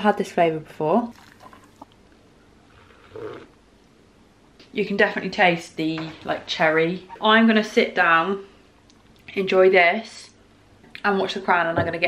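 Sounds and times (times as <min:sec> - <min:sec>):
person sipping from mug: 0:01.1 - 0:02.0, 0:02.7 - 0:03.6.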